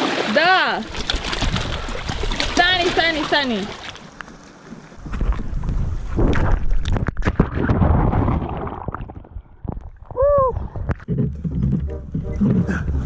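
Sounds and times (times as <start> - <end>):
sea water splashing and churning: 0.0 - 10.1
low water rumble: 0.0 - 13.0.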